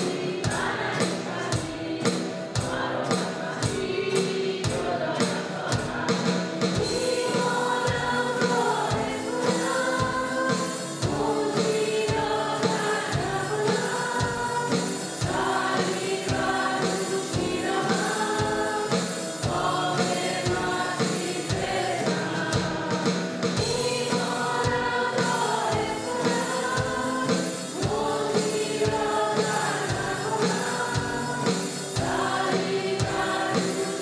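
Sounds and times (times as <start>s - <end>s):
acoustic guitar: 0.0s - 34.0s
drum kit steady beat: 0.0s - 34.0s
woman and man singing: 0.0s - 34.0s.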